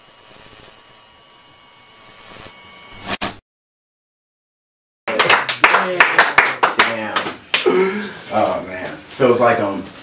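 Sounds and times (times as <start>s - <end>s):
small crowd clapping: 5.1s - 7.8s
overlapping talk: 5.1s - 7.9s.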